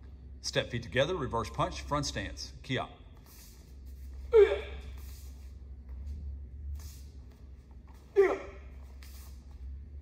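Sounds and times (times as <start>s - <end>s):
person shouting: 4.3s - 4.8s, 8.2s - 8.7s.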